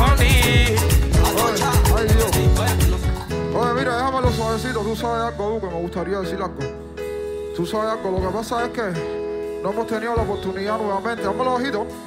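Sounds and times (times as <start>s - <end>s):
person singing: 0.0s - 5.4s
live band music: 0.0s - 12.0s.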